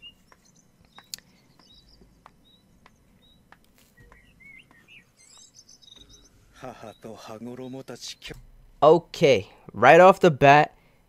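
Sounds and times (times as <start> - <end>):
bird chirps: 0.0 - 8.6
soft clicks: 0.3 - 4.8.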